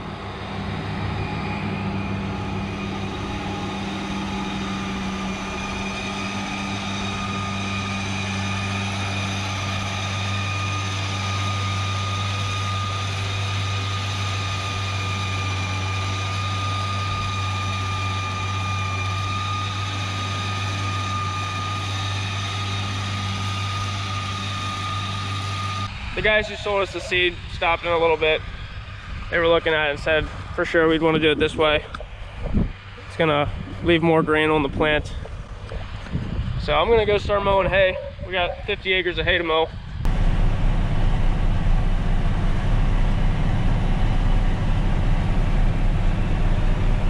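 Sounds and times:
tractor engine running under load: 0.0s - 38.8s, 39.8s - 47.0s
high mower whine: 0.0s - 47.0s.

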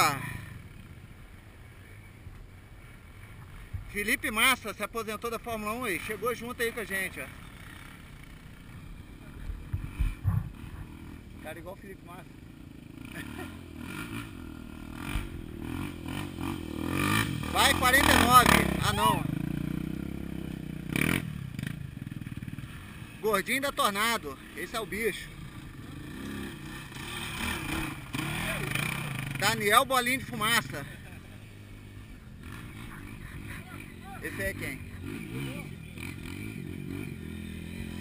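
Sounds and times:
motorcycle engine idling: 6.4s - 38.0s
low thumps: 9.7s - 10.9s.

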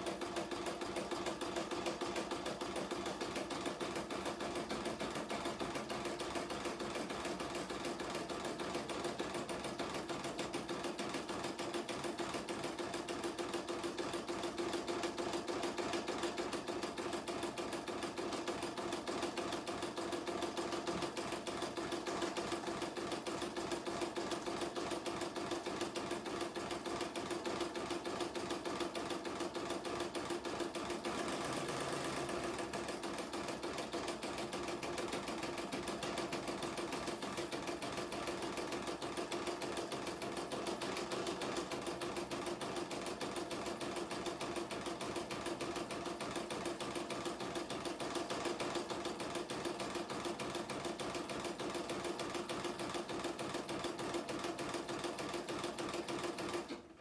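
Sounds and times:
embroidery machine stitching: 0.0s - 57.0s.

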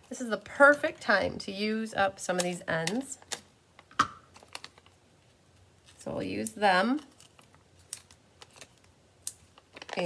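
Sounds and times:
paper and card handling: 7.0s - 8.9s.

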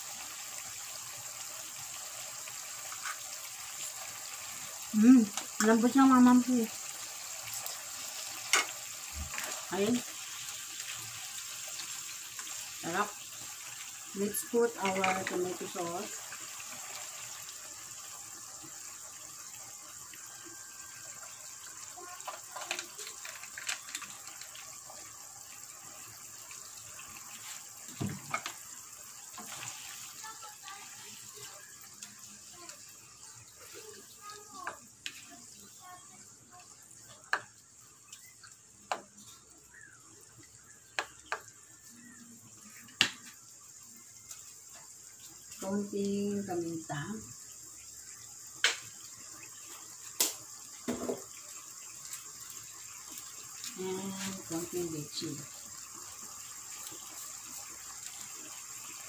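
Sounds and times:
sauce simmering in a wok: 0.0s - 59.0s.

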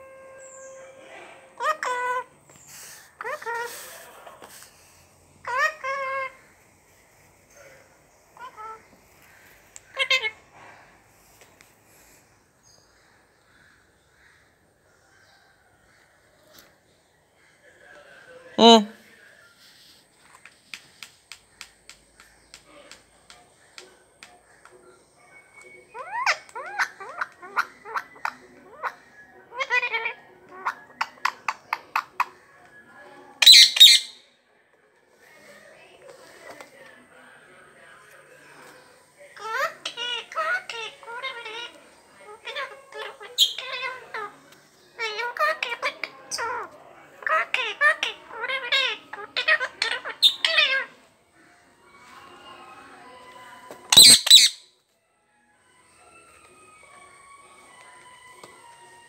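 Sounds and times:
parakeet chirps and calls: 5.4s - 6.4s, 8.4s - 10.4s, 33.4s - 34.2s, 39.4s - 44.3s, 45.0s - 50.9s, 53.9s - 54.7s
parakeet harsh screech: 33.4s - 34.2s, 53.9s - 54.7s.

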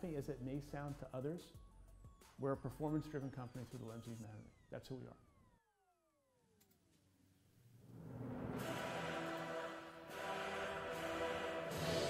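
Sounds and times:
music: 0.0s - 5.0s, 7.9s - 12.0s.

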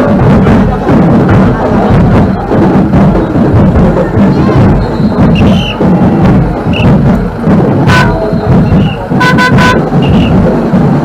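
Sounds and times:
street percussion with steady beat: 0.0s - 11.0s
vehicle horn tooting: 7.9s - 10.4s.

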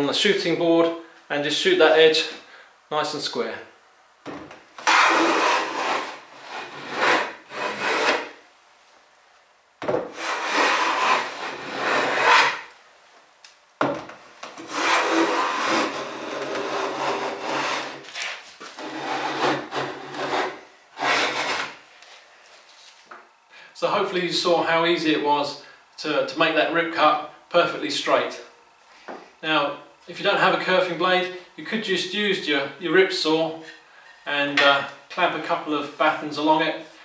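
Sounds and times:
hand plane cutting wood: 4.8s - 8.3s, 10.1s - 12.7s, 14.6s - 18.1s, 18.8s - 21.8s.

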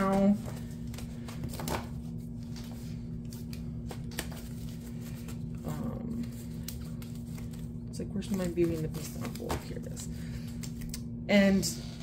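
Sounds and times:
paper rustling: 0.0s - 10.8s
steady low hum: 0.0s - 12.0s.

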